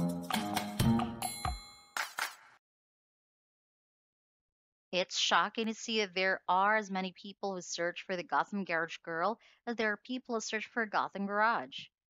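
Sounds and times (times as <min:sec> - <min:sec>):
bell-like ding: 0:00.9 - 0:02.2.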